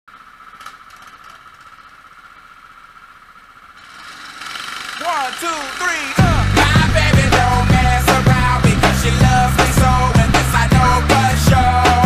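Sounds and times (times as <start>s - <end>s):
go-kart engines idling: 0.1s - 12.0s.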